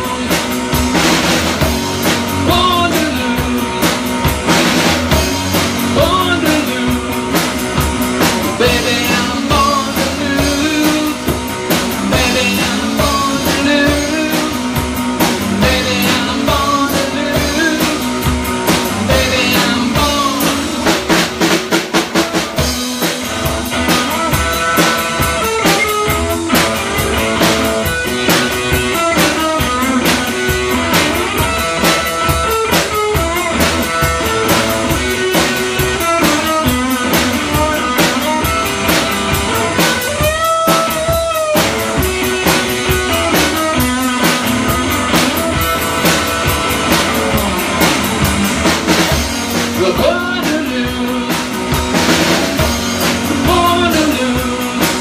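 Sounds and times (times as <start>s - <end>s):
drum kit beat: 0.0s - 55.0s
electric guitar: 0.0s - 55.0s.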